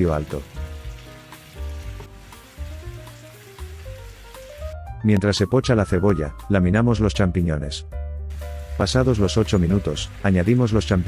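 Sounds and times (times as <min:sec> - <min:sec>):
onions sizzling in frying pan: 0:00.0 - 0:04.8, 0:08.3 - 0:11.0
background music with stepping melody: 0:00.0 - 0:11.0.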